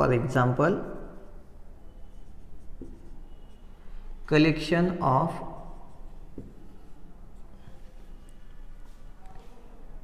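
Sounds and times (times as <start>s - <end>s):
marker writing on whiteboard: 0.5s - 4.0s, 5.3s - 9.5s.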